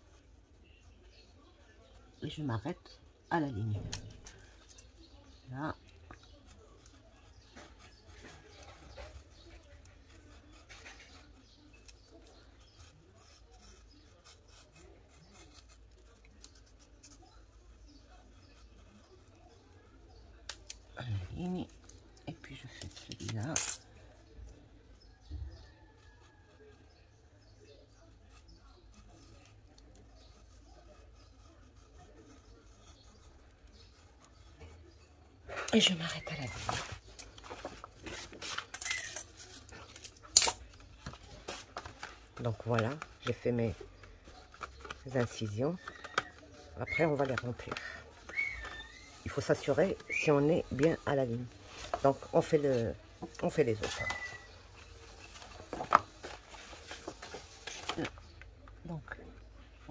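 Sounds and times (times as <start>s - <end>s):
craft knife cutting paper: 36.5s - 58.2s.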